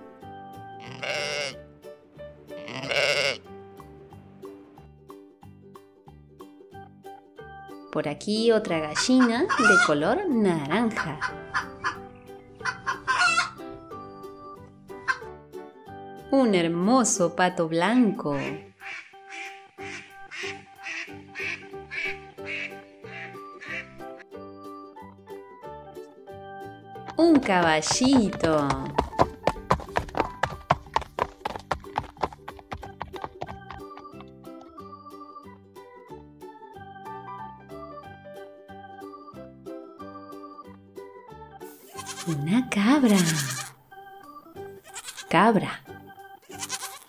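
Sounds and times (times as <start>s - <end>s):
light background music: 0.0s - 47.0s
sheep bleating: 0.8s - 1.6s, 2.6s - 3.5s, 41.8s - 43.8s, 44.8s - 45.4s, 46.4s - 47.0s
duck quacking: 2.6s - 3.4s, 8.9s - 9.9s, 12.6s - 13.6s, 18.4s - 24.0s.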